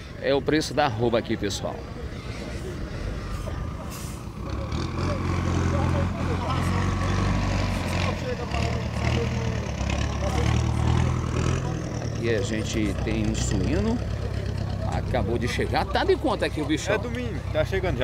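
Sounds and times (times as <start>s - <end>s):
truck engine idling: 0.0s - 18.0s.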